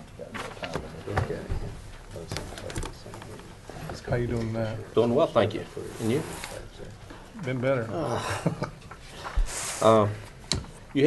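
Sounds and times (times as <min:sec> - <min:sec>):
low murmured voices: 0:00.0 - 0:08.4.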